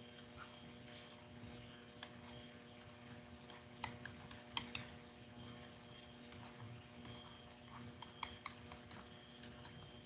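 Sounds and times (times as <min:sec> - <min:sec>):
faint electrical hum: 0:00.0 - 0:10.0
stylus tapping on tablet screen: 0:03.8 - 0:05.0.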